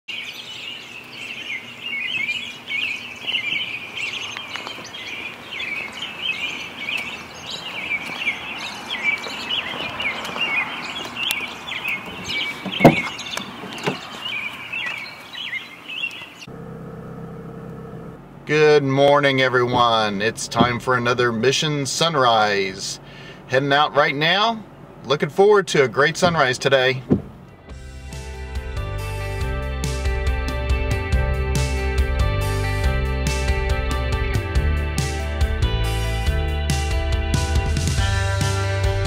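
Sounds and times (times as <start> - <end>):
small birds chirping: 0.1 - 16.5
sharp thump: 12.8 - 13.1, 26.2 - 27.4.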